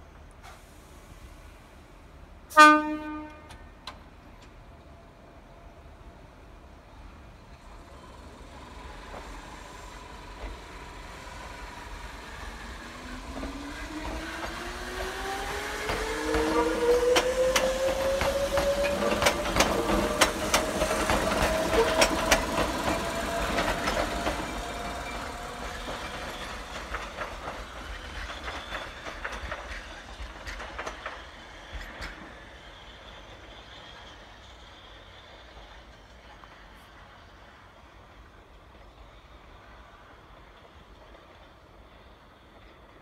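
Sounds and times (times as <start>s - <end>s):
train wheels clicking over rail joints: 7.5s - 37.1s.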